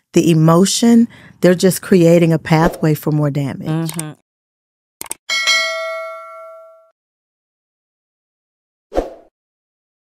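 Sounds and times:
button clicks: 0:03.7 - 0:04.2
bright bell ding: 0:05.3 - 0:06.9.

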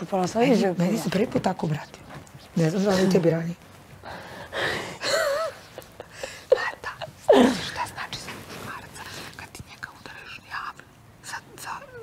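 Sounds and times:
women whispering: 0:06.6 - 0:12.0.

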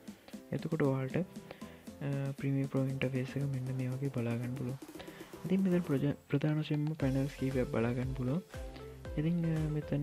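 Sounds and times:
background music: 0:00.0 - 0:10.0
person speaking: 0:00.5 - 0:10.0.

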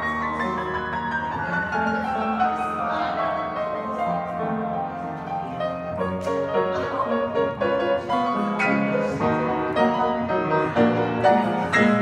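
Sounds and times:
upright piano playing: 0:00.0 - 0:12.0.

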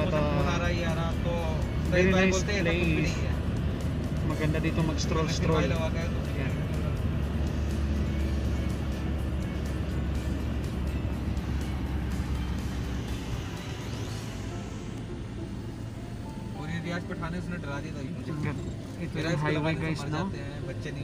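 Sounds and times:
car engine and road rumble: 0:00.0 - 0:21.0
music playing: 0:00.0 - 0:21.0.

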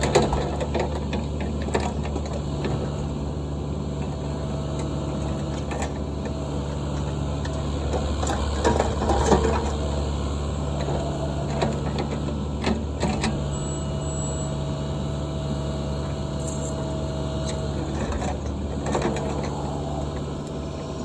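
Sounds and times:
excavator diesel engine running: 0:00.0 - 0:21.0.

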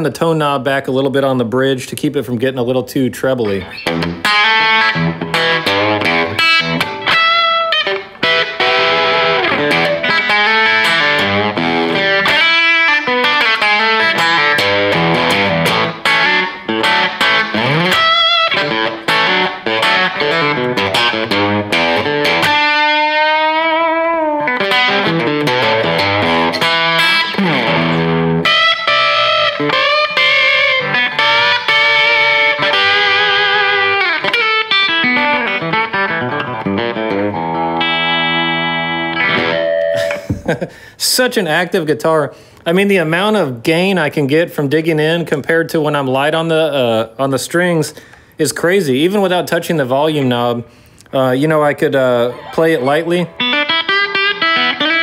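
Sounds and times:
electric guitar lead: 0:03.4 - 0:40.9, 0:51.9 - 0:55.0.

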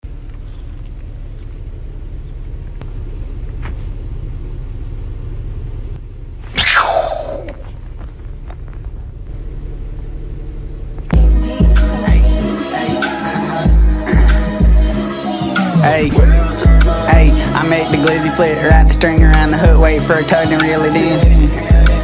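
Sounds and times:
vehicle cabin rumble: 0:00.0 - 0:12.4, 0:15.8 - 0:17.8
downward pitch sweep: 0:06.6 - 0:07.7.

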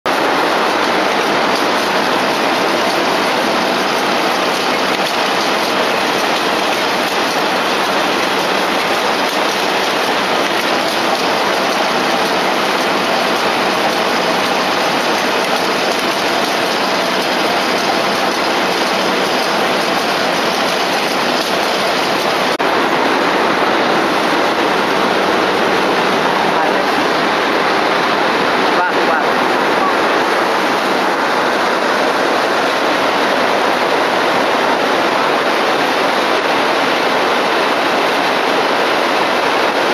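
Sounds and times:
textile machinery running: 0:00.1 - 0:39.9.

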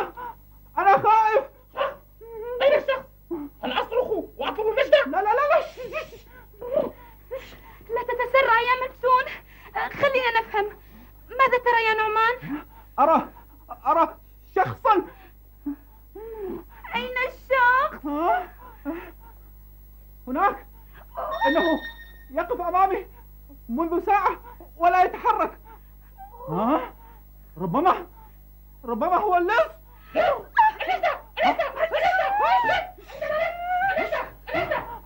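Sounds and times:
wordless vocal cries: 0:21.1 - 0:22.4, 0:30.0 - 0:35.0.

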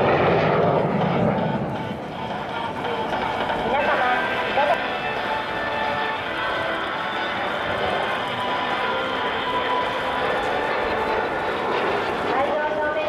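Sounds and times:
jet engine noise: 0:00.0 - 0:13.0
music: 0:00.0 - 0:13.0.

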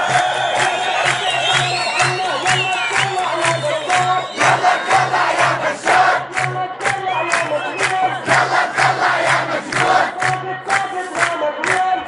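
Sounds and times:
crowd chanting: 0:00.0 - 0:12.0
rhythmic drum beat: 0:00.0 - 0:12.0.

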